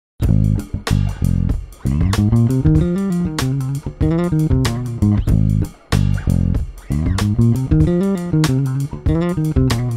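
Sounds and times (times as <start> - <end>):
electric bass guitar solo: 0.2 - 9.9.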